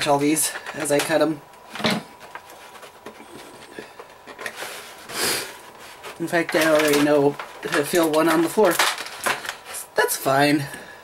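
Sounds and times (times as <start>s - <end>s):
plastic rustling: 0.3s - 10.4s.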